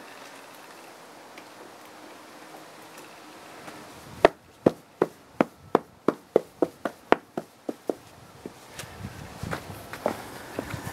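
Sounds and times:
boot stamping on asphalt: 0:04.2 - 0:08.6.

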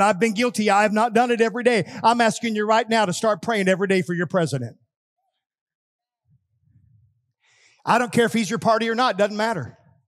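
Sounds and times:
man speaking: 0:00.0 - 0:04.8, 0:07.8 - 0:09.9
man drawing breath: 0:07.4 - 0:07.8.

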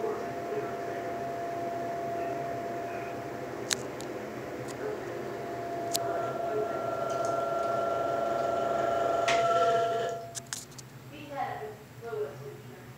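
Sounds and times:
motor whine: 0:00.0 - 0:10.4
exhaust fan running: 0:00.0 - 0:12.9
clicks: 0:05.9 - 0:06.1.

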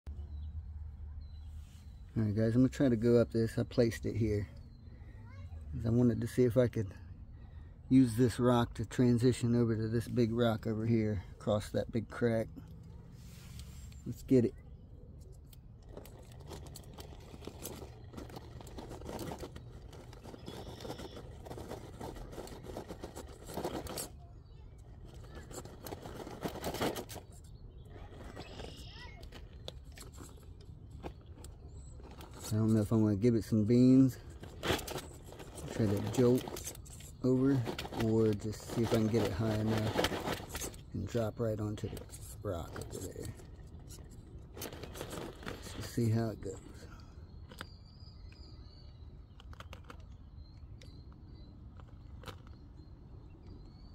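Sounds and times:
faint high bird chirps: 0:00.1 - 0:06.2, 0:12.9 - 0:22.0, 0:27.2 - 0:34.4, 0:40.6 - 0:53.9
grit crackling under wheels: 0:01.2 - 0:53.9
rubber tyres scraping on rock: 0:15.8 - 0:47.0.

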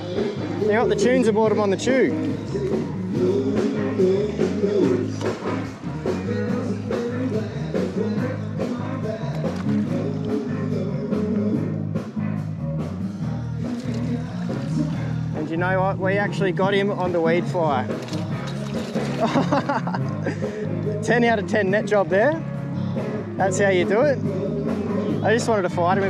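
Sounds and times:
live rock and roll band: 0:00.0 - 0:15.6
bass line: 0:00.0 - 0:26.0
person singing: 0:02.1 - 0:12.0, 0:24.1 - 0:25.3.

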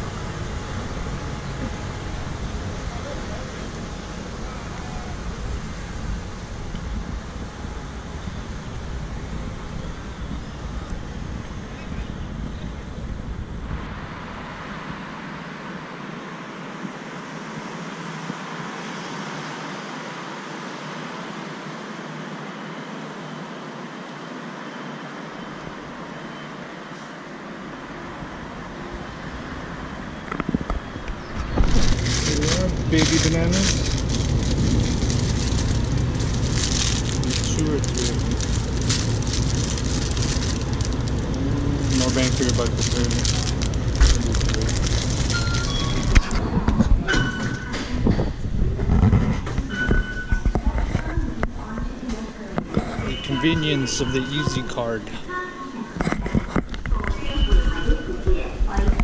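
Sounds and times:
distant traffic hiss: 0:00.0 - 0:46.0
wind rumbling on microphone: 0:30.0 - 0:53.0.

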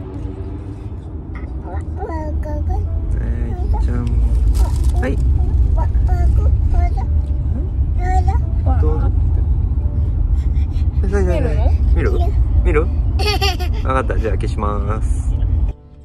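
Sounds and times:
car engine and road noise: 0:00.0 - 0:16.0.

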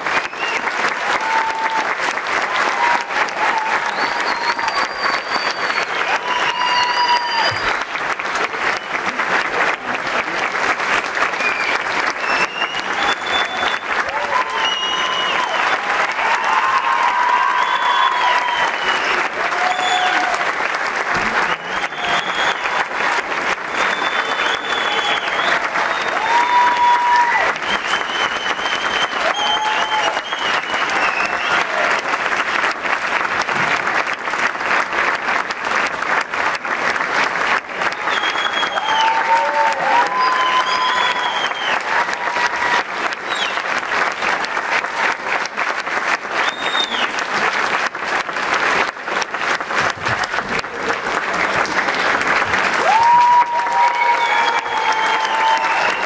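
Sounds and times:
audience applauding: 0:00.0 - 0:56.0.

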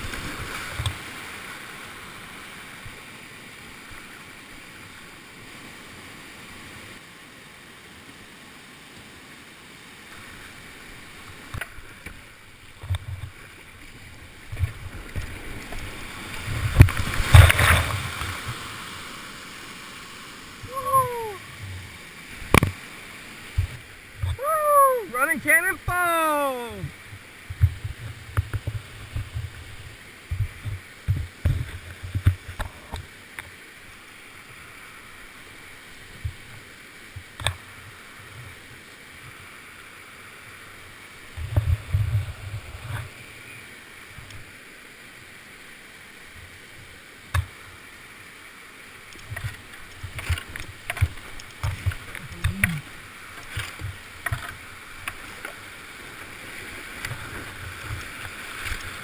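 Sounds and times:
water rapids rushing: 0:00.0 - 0:59.0.

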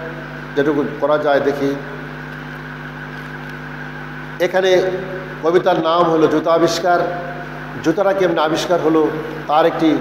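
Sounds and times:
steady hum: 0:00.0 - 0:10.0.

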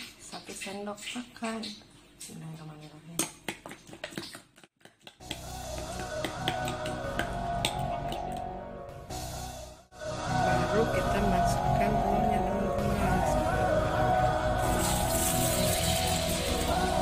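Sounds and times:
background music: 0:05.2 - 0:17.0.

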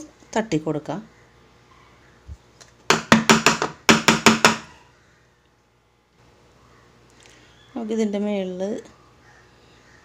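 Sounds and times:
cake tin knocking on stone counter: 0:02.9 - 0:04.7.

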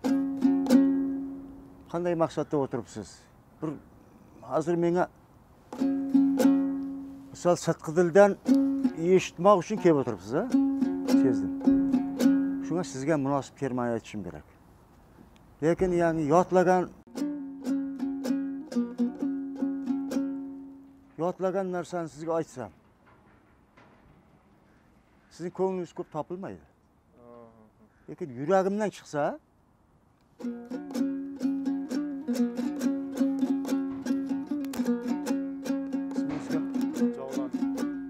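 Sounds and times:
lute strummed chord ringing: 0:00.0 - 0:01.7, 0:05.8 - 0:07.3, 0:08.4 - 0:13.0, 0:17.1 - 0:21.1, 0:30.4 - 0:38.0.

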